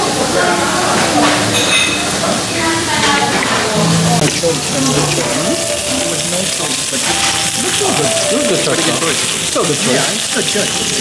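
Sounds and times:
background voices: 0:00.0 - 0:11.0
meat sizzling on grill plate: 0:00.4 - 0:11.0.

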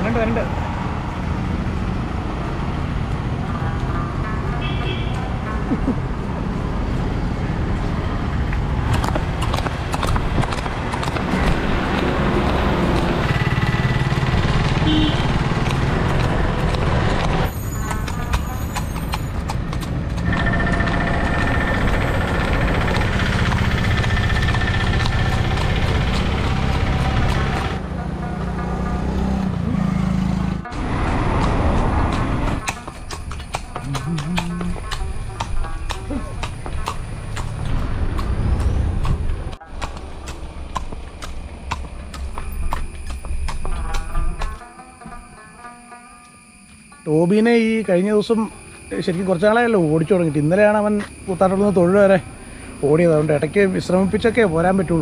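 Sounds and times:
horse hooves clip-clopping on pavement: 0:07.6 - 0:28.4, 0:30.7 - 0:45.2.

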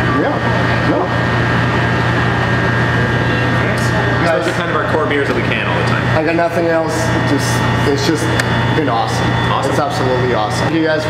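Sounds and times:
machinery hum with high whine: 0:00.0 - 0:11.0.

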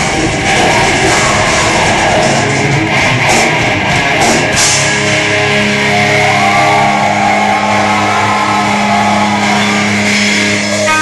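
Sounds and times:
drums and cymbals: 0:00.0 - 0:06.3
distorted electric guitars: 0:00.0 - 0:11.0.

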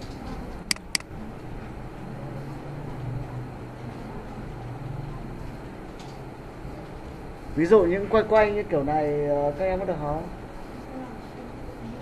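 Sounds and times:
computer mouse clicks: 0:00.7 - 0:01.1.

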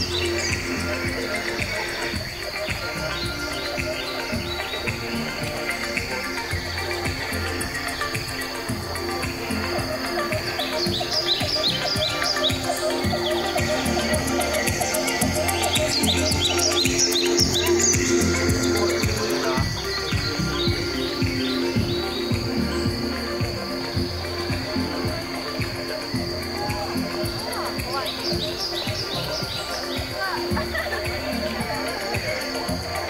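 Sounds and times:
high bird-like electronic chirps: 0:00.0 - 0:25.0
pulsing low beat: 0:00.0 - 0:33.0.

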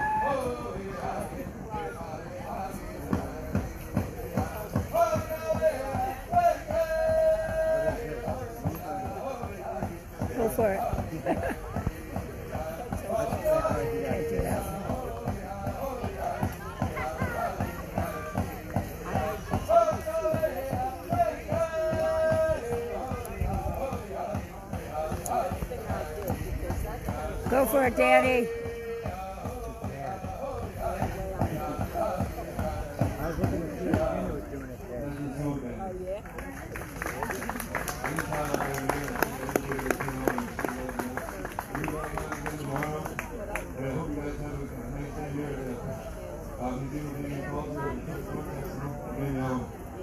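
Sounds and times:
voices singing: 0:00.0 - 0:35.7
crowd chatter: 0:00.0 - 0:50.0
drum struck in steady beat: 0:03.0 - 0:34.2.

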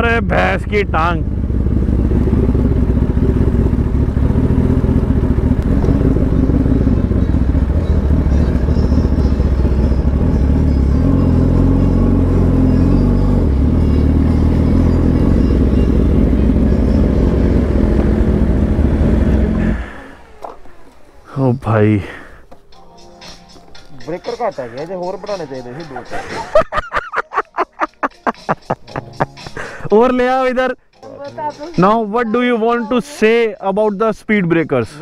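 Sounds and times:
motorcycle engine running: 0:00.0 - 0:21.4.

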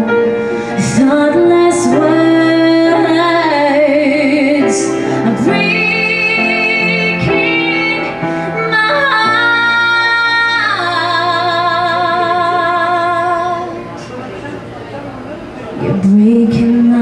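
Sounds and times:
piano: 0:00.0 - 0:17.0
woman singing a slow ballad: 0:00.6 - 0:13.9, 0:15.9 - 0:17.0.

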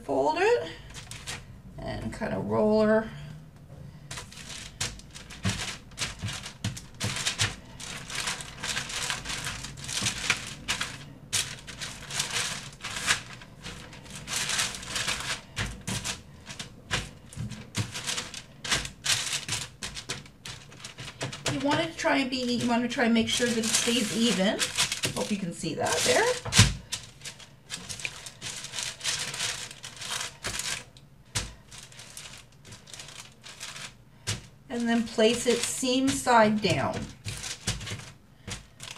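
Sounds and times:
parchment paper crinkling: 0:00.5 - 0:01.6, 0:03.9 - 0:38.9.

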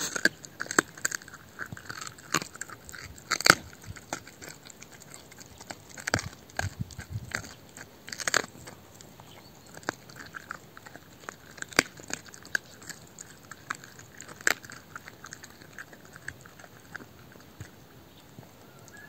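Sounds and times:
bone cracking: 0:00.0 - 0:17.8
dog chewing bone: 0:00.0 - 0:19.0.

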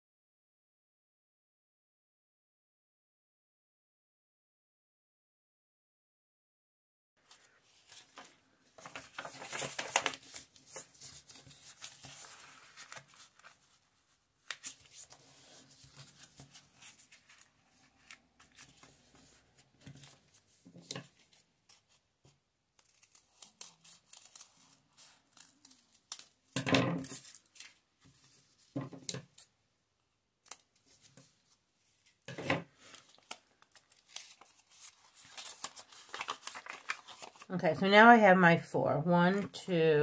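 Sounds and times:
paper being folded and creased: 0:07.2 - 0:29.5, 0:30.4 - 0:37.5
scissors snipping paper: 0:22.8 - 0:27.8.

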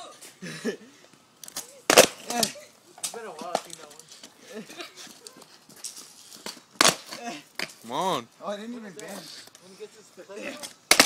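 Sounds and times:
skateboard wheels on concrete: 0:01.0 - 0:11.0
skateboard clacking on ground: 0:01.4 - 0:04.3, 0:10.6 - 0:11.0.

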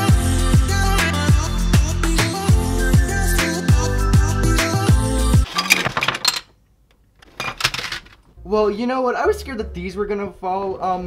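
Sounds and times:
background music with a beat: 0:00.0 - 0:05.4
plastic furniture clattering: 0:05.4 - 0:06.6, 0:07.2 - 0:08.2.

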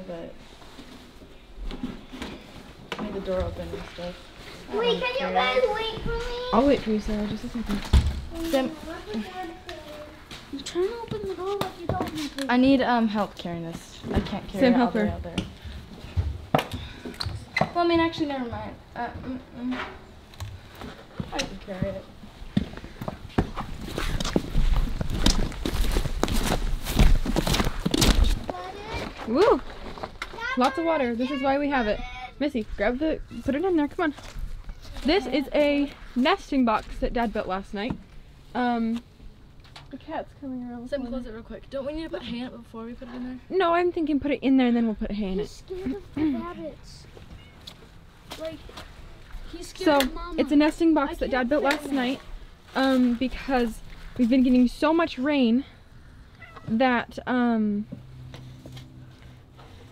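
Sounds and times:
footsteps in rubber boots: 0:20.8 - 0:30.2.

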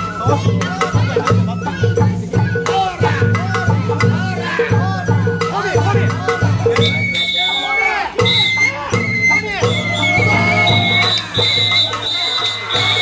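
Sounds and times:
bamboo flute long notes: 0:00.0 - 0:13.0
crowd voices calling: 0:00.0 - 0:13.0
drums: 0:00.0 - 0:13.0.

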